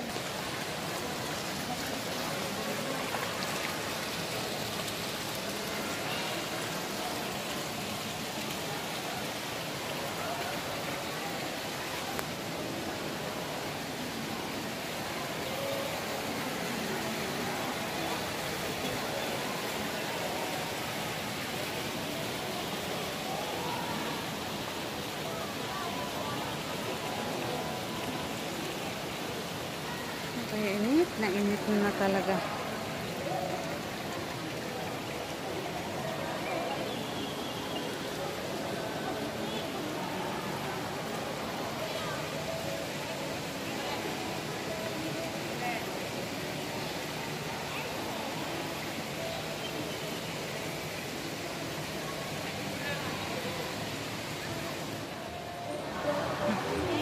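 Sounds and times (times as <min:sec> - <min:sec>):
faint voices: 0:00.0 - 0:57.0
fountain water rushing: 0:00.0 - 0:57.0.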